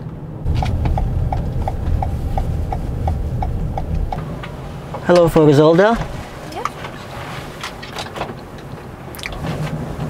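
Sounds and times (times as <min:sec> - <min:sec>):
road and engine rumble: 0:00.0 - 0:10.0
turn signal ticking: 0:00.5 - 0:04.6.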